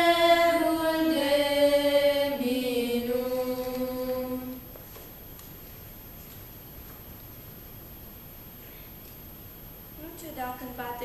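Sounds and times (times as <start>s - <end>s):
children singing in unison: 0.0s - 4.6s.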